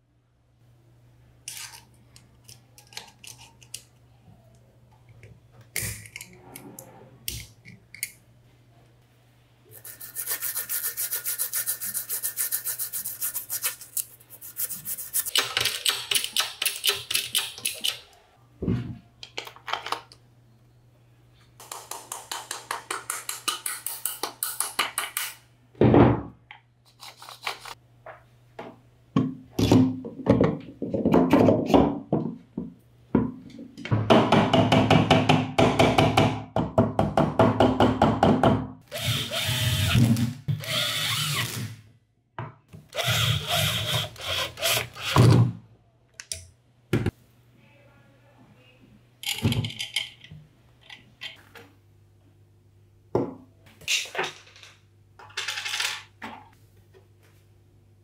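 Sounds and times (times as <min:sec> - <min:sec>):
scrubbing on metal motor parts: 0:09.7 - 0:15.5
metal parts clicking and knocking: 0:49.2 - 0:51.4.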